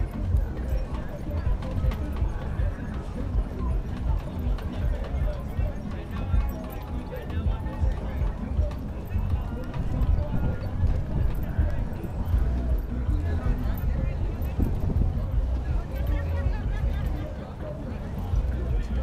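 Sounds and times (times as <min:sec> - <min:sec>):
background music: 0:00.0 - 0:19.0
indistinct chatter: 0:00.0 - 0:19.0
steady low rumble: 0:07.4 - 0:17.1.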